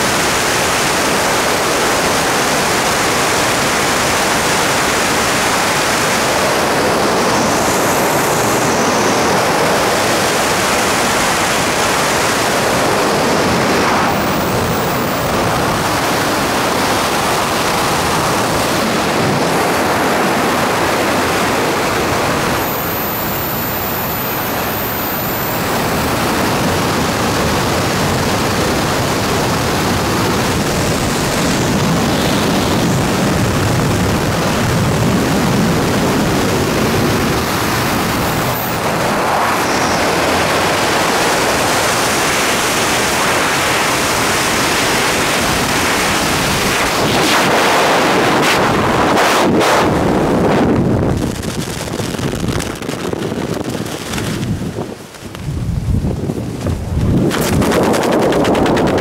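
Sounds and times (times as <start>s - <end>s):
wind blasting over microphone: 0.0s - 59.0s.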